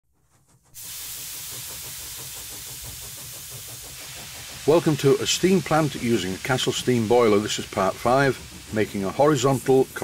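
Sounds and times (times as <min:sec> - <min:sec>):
steam hissing: 0:00.2 - 0:10.0.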